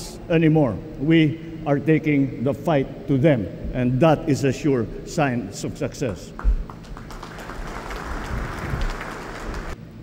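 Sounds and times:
audience applauding: 0:06.4 - 0:09.8.

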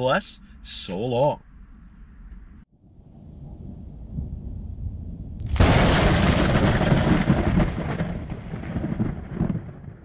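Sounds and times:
rumbling thunder-like boom: 0:03.1 - 0:10.0
scattered crackles: 0:05.4 - 0:10.0.

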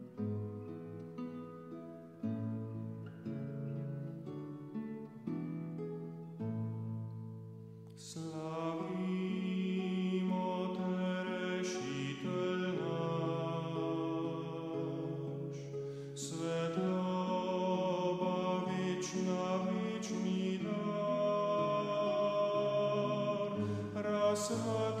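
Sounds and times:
choir singing a hymn: 0:08.2 - 0:25.0.

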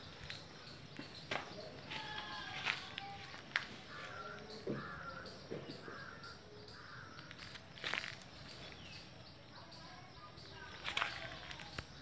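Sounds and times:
bird calling: 0:00.0 - 0:12.0.

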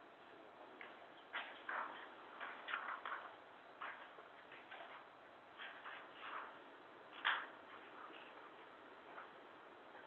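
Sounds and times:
low steady hiss: 0:00.0 - 0:10.0
small clicks and rustles: 0:00.8 - 0:10.0.

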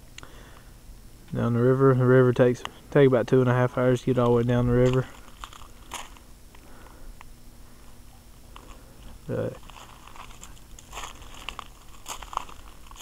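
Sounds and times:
faint clicks and crunching: 0:04.2 - 0:13.0.

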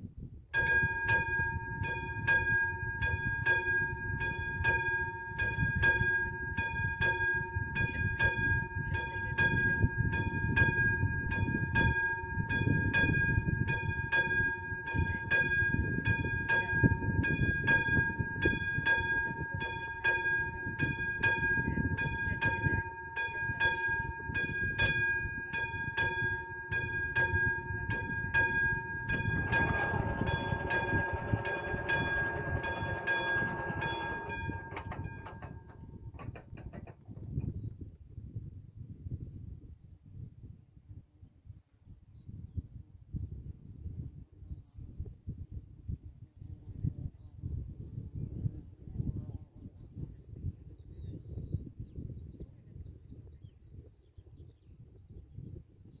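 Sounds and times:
level crossing warning bell: 0:00.6 - 0:36.9
gusty low rumble: 0:24.0 - 0:39.7
barrier motor whirring: 0:28.0 - 0:37.0.

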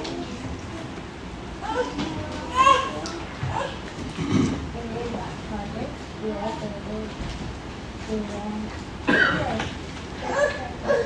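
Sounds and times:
child vocal sounds: 0:01.6 - 0:03.9, 0:10.2 - 0:11.0.

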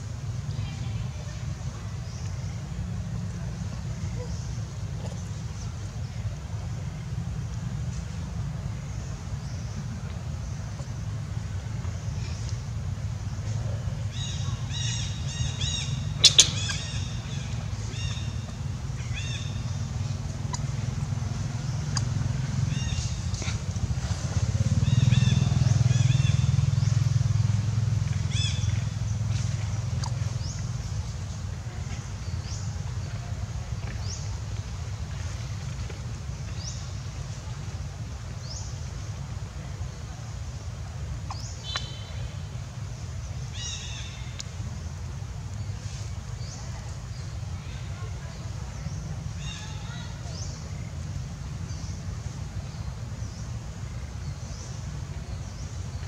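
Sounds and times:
engine rumbling: 0:00.0 - 0:56.0.

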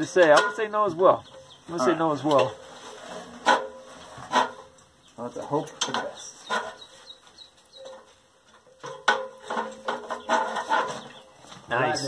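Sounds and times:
metal ladder knocking and ringing: 0:00.1 - 0:00.8, 0:07.8 - 0:11.0
ladder squeaks: 0:05.8 - 0:11.3.

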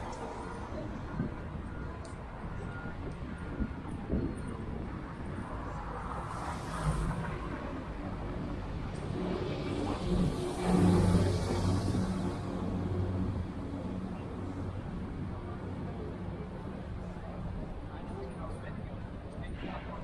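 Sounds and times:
street traffic: 0:00.0 - 0:20.0.

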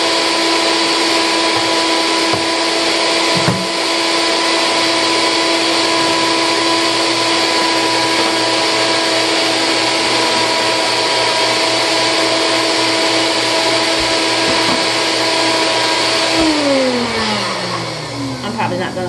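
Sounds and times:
blender motor whining: 0:00.0 - 0:19.0.

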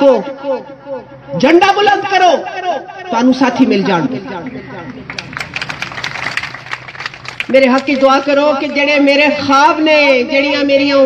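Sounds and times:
crowd clapping: 0:04.4 - 0:08.9.

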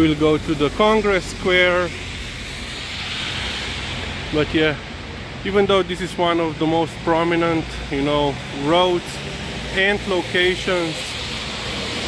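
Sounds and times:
low traffic rumble: 0:00.0 - 0:12.0
tyres hissing on wet road: 0:00.0 - 0:12.0.

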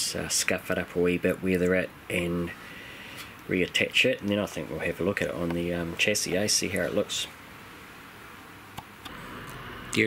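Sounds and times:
room hiss: 0:00.0 - 0:10.0.

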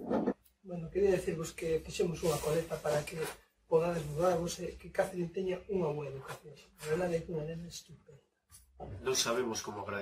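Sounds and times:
man talking: 0:00.7 - 0:08.2, 0:08.8 - 0:10.0.

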